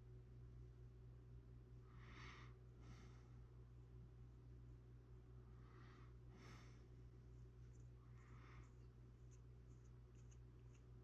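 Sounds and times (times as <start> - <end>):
low steady hum: 0.0 - 11.0
sculpting tool scratching clay: 8.7 - 11.0.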